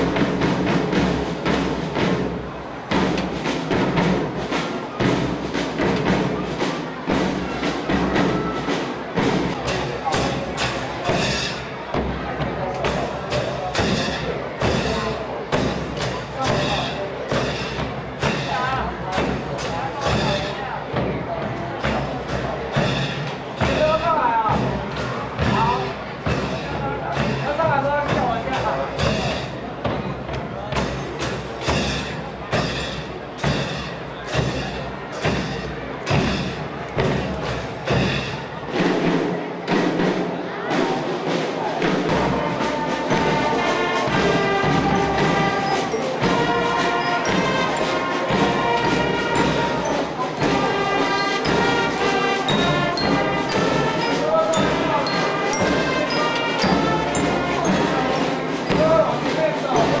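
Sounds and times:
marching drum beat: 0:00.0 - 1:00.0.

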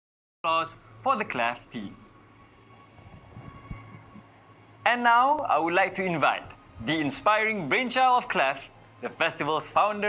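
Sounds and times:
low electrical hum: 0:00.4 - 0:10.0
faint low thumps: 0:03.0 - 0:04.4.

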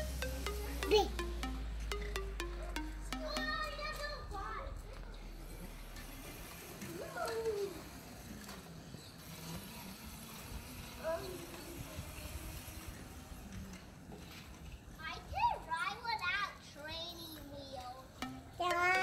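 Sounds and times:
background music: 0:00.0 - 0:04.6, 0:18.2 - 0:19.0.

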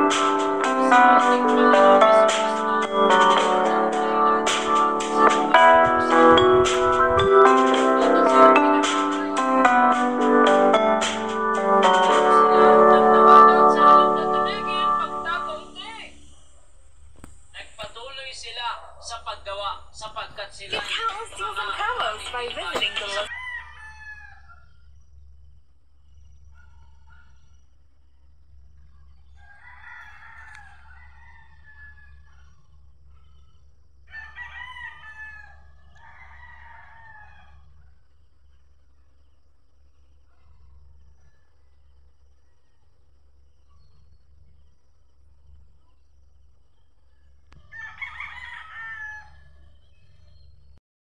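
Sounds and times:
rooster crowing: 0:20.8 - 0:24.7, 0:29.3 - 0:32.6, 0:34.1 - 0:37.9, 0:47.5 - 0:49.7.

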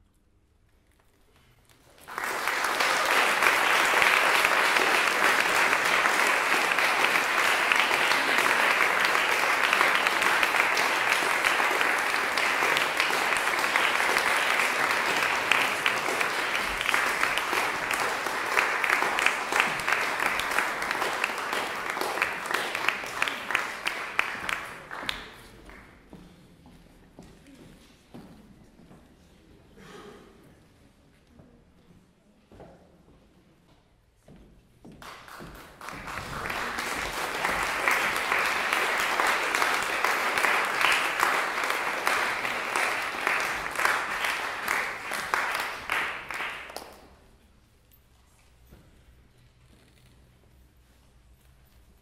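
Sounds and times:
audience applauding: 0:01.8 - 0:25.9, 0:35.0 - 0:47.2.

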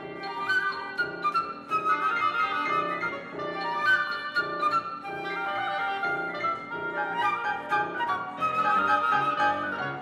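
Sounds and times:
flute oboe and piano trio: 0:00.0 - 0:10.0.

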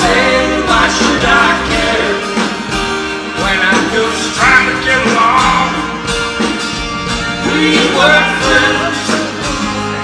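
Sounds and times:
live soft rock band: 0:00.0 - 0:10.0
strummed acoustic guitar: 0:00.0 - 0:10.0.

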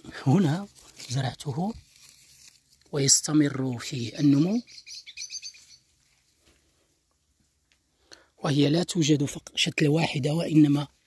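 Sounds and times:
small bird chirping: 0:03.9 - 0:06.2.

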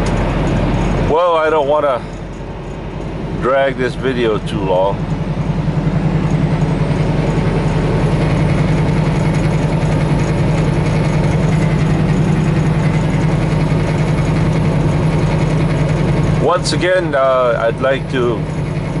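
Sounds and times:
truck engine and road drone: 0:00.0 - 0:19.0.

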